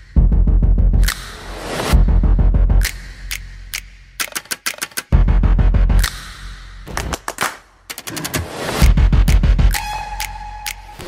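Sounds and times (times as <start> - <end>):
trailer music: 0.0 - 11.0
quick sharp clicking effects: 2.8 - 5.2.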